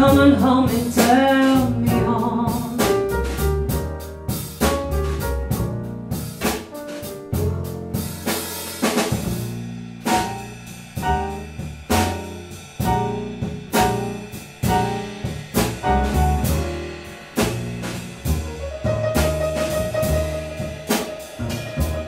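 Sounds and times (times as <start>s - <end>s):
drum hits: 0.0s - 22.0s
piano chords: 0.0s - 22.0s
walking double bass: 0.0s - 22.0s.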